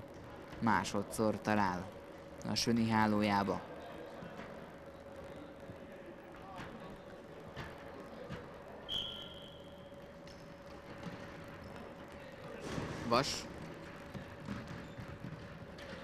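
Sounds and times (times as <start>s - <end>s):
faint hum: 0.0s - 16.0s
referee's whistle blast: 8.9s - 9.7s
ball and feet on wooden floor: 10.3s - 16.0s.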